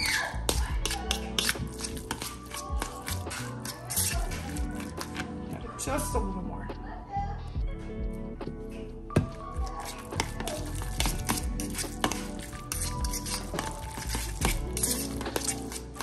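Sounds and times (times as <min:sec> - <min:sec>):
background music: 0:00.0 - 0:16.0
metal fork clinking against bowl: 0:00.1 - 0:02.9.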